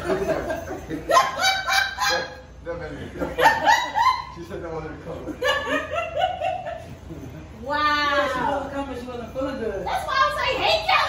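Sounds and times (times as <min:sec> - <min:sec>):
women laughing and squealing: 0:00.0 - 0:02.5, 0:03.3 - 0:04.4, 0:05.4 - 0:08.5.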